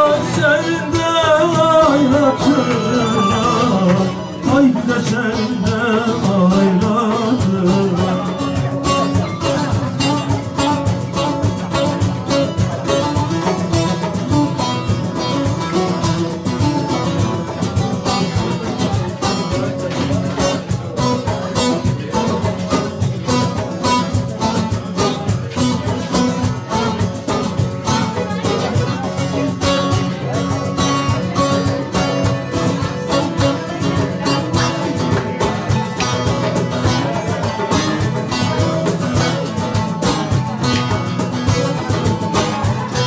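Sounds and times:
goblet drum rhythm: 0:00.0 - 0:43.0
plucked saz melody: 0:00.0 - 0:43.0.

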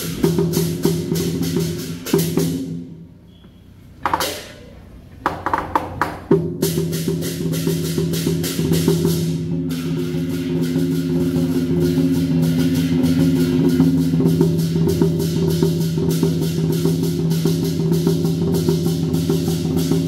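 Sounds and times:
large drum beating: 0:00.0 - 0:03.0, 0:05.3 - 0:20.0.

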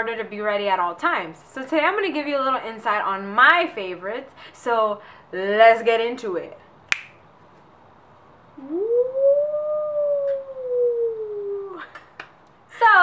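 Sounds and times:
woman singing long ooo: 0:08.6 - 0:11.9.

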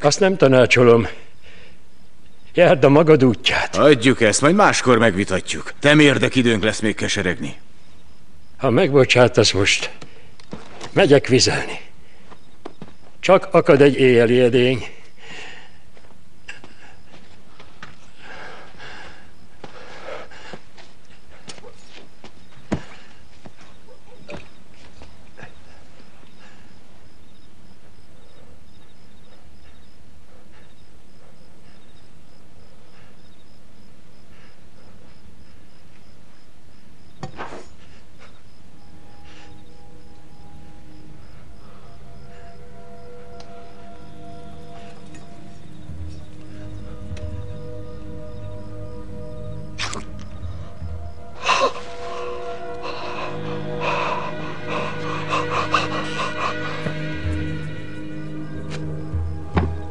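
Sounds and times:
crickets chirping: 0:00.0 - 0:59.9
low musical drone: 0:38.5 - 0:59.9
man gasping in pain: 0:51.4 - 0:57.5.

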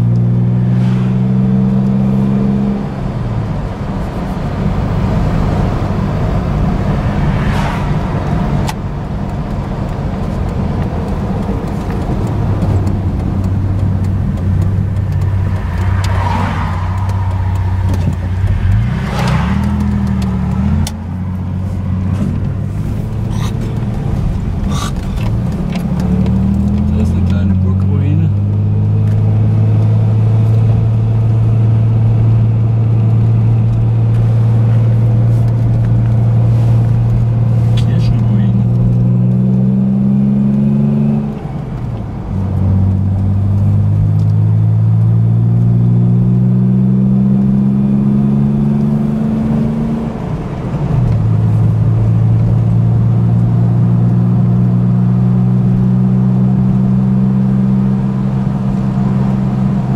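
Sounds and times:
car engine accelerating and shifting: 0:00.0 - 0:59.9.

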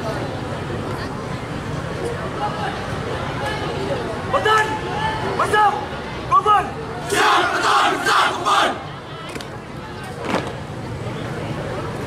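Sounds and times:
crowd murmur: 0:00.0 - 0:12.0
shouted command: 0:04.4 - 0:08.8.

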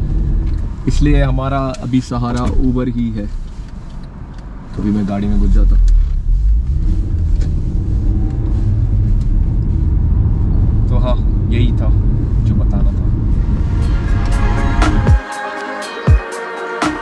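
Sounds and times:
engine and road rumble: 0:00.0 - 0:15.2.

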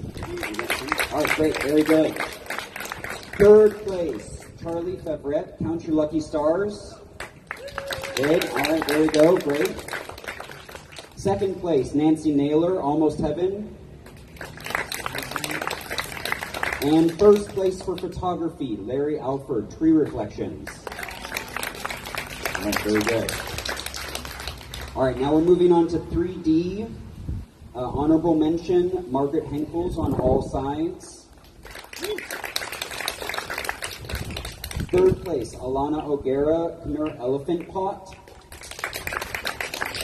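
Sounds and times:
crowd clapping: 0:00.0 - 0:04.8, 0:07.2 - 0:11.5, 0:14.0 - 0:18.1, 0:20.6 - 0:25.5, 0:31.4 - 0:35.4, 0:37.0 - 0:40.0.

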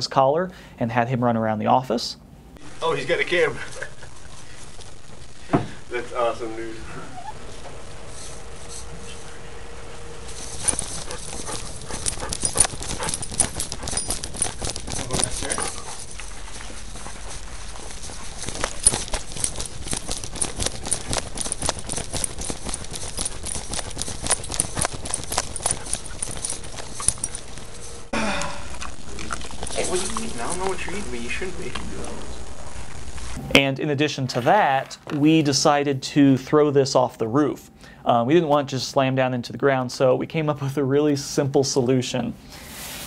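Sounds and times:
dog claws clicking on hard floor: 0:10.3 - 0:28.0, 0:29.2 - 0:30.8
person speaking: 0:10.5 - 0:16.1, 0:28.5 - 0:32.4.

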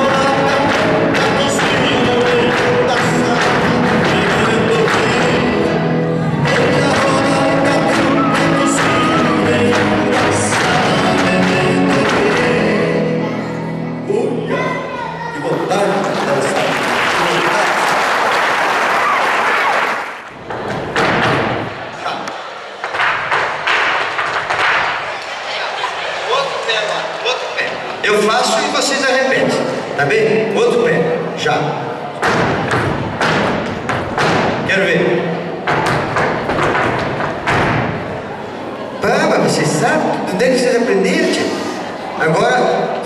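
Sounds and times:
audience applause: 0:15.6 - 0:20.3.

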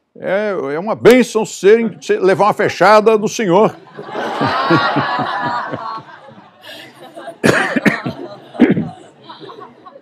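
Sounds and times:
person coughing: 0:07.4 - 0:09.0.

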